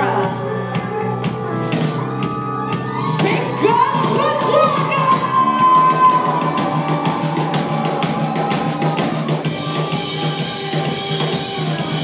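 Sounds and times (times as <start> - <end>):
drum kit: 0.0 - 12.0
distorted electric guitar: 5.3 - 12.0.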